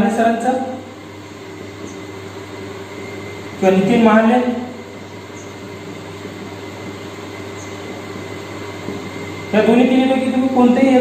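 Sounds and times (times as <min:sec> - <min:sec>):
room noise hum and hiss: 0:00.0 - 0:11.0.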